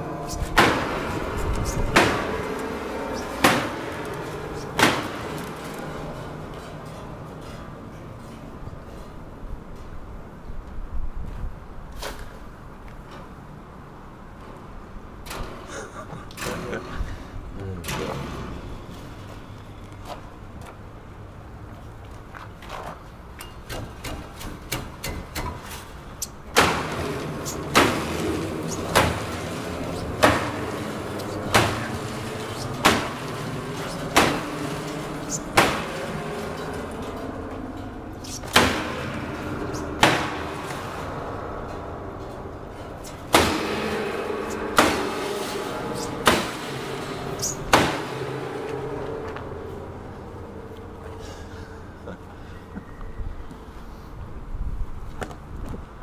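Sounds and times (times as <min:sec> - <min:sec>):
sledgehammer striking piano strings: 0:00.0 - 0:08.6, 0:26.5 - 0:51.9
piano strings ringing: 0:00.0 - 0:09.4, 0:26.6 - 0:53.0.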